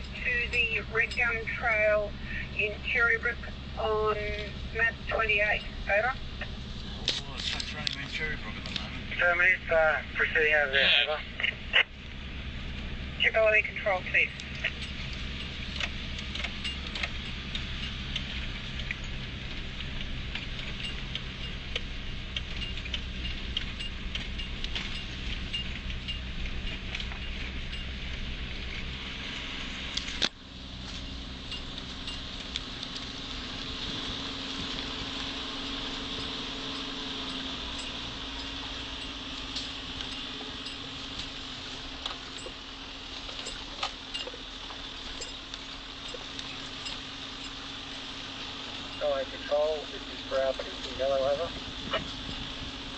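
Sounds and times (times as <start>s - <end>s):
car engine droning: 0.0s - 52.9s.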